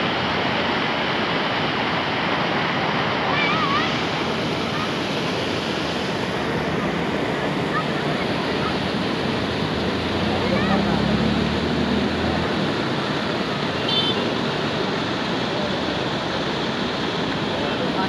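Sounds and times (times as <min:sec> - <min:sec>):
floodwater rushing: 0:00.0 - 0:18.0.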